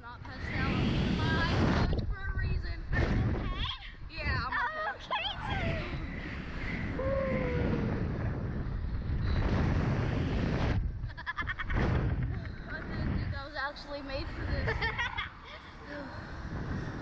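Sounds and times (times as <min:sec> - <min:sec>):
wind buffeting microphone: 0:00.0 - 0:17.0
child laughing: 0:04.5 - 0:05.9, 0:11.0 - 0:12.5, 0:14.4 - 0:16.0
short falling cry: 0:06.9 - 0:08.2.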